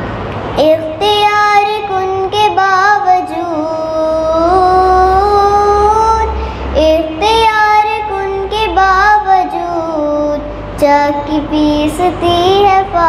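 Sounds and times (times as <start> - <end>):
girl singing into a microphone: 0.5 - 13.0.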